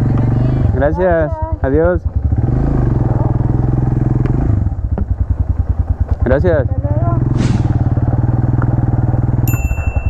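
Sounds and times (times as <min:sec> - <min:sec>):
motorcycle engine pulling away: 0:00.0 - 0:10.0.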